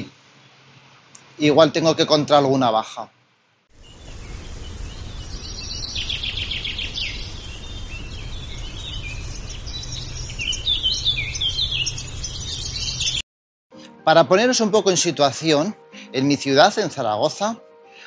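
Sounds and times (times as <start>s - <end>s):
birds chirping and trilling: 3.8s - 13.2s
low rumble: 3.8s - 13.2s.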